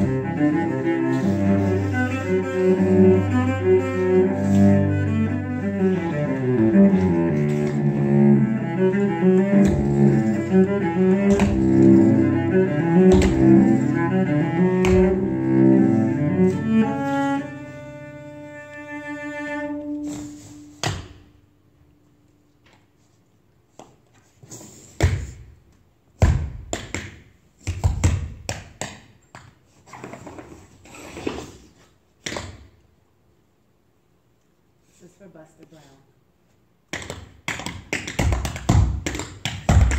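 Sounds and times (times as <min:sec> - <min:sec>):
cello bowed notes: 0:00.0 - 0:21.8
tap shoes on wooden stage: 0:09.5 - 0:10.2, 0:11.2 - 0:12.0, 0:13.0 - 0:13.7, 0:14.8 - 0:15.2, 0:36.9 - 0:39.9
tap shoes on wooden floor: 0:11.1 - 0:12.0, 0:13.0 - 0:13.7, 0:14.8 - 0:15.2.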